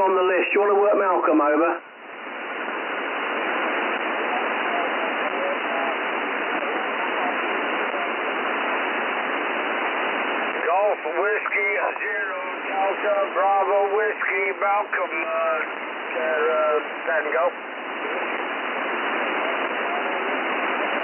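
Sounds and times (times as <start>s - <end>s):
radio voice: 0.0s - 1.8s, 3.8s - 9.5s, 10.4s - 21.0s
radio interference hiss: 0.0s - 21.0s.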